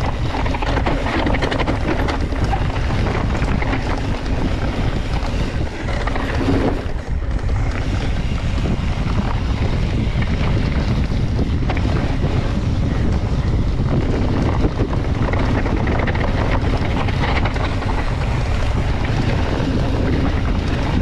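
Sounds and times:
bike tyres crackling over dirt: 0.0 - 21.0
wind buffeting microphone: 0.0 - 21.0.

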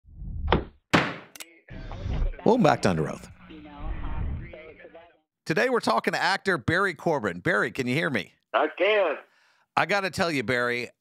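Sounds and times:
heavy thunk: 0.5 - 1.3
whoosh: 3.8 - 4.5.

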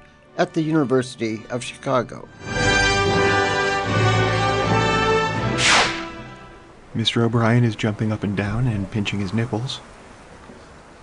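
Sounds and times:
music with held notes: 0.0 - 6.8
downward swoosh effect: 5.5 - 6.2.

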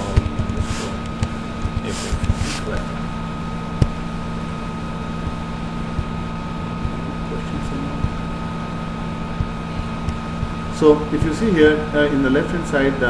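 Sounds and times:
electrical hum and hiss: 0.0 - 13.0.

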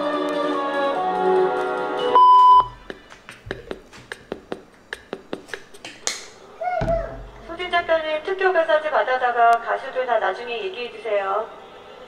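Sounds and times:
music with sustained notes: 0.0 - 2.2
electronic beep: 2.2 - 2.8.

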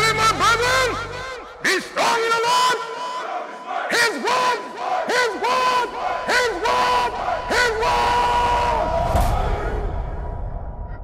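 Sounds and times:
crowd shouting: 0.6 - 10.1.

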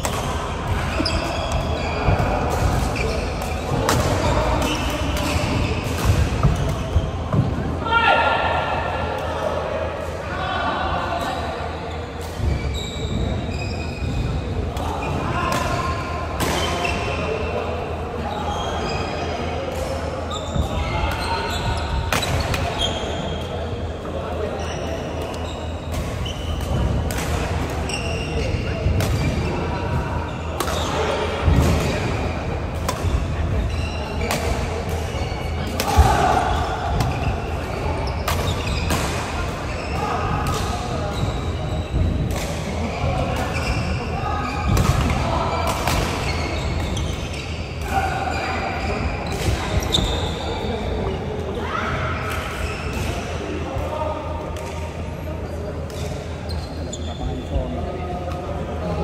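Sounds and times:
rackets hitting shuttlecock: 0.0 - 7.5, 32.7 - 33.3, 34.2 - 41.4.

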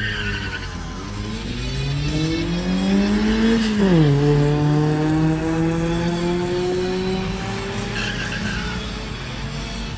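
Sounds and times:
car engine accelerating hard: 0.0 - 9.9.

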